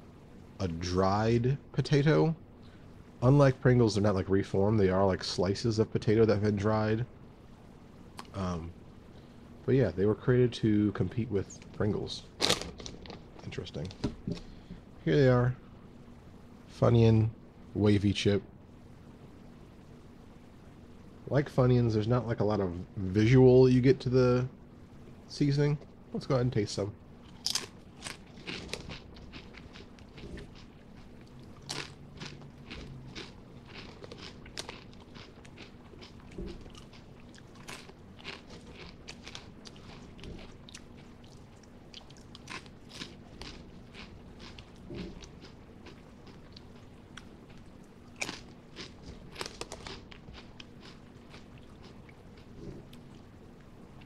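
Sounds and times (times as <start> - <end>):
faint steady hum: 0.0 - 54.0
crunching potato chips: 27.2 - 52.6.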